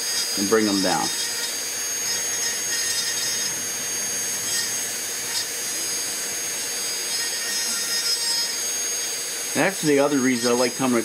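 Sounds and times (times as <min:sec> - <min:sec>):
rotary tool grinding wood: 0:00.0 - 0:11.0.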